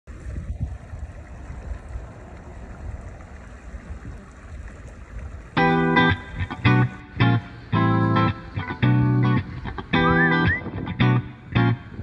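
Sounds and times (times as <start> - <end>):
water: 0.0 - 12.0
wind: 0.0 - 12.0
ringing guitar chord: 5.6 - 12.0.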